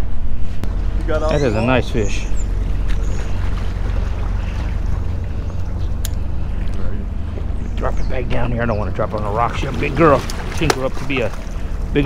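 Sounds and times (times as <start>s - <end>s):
wind buffeting microphone: 0.5s - 12.0s.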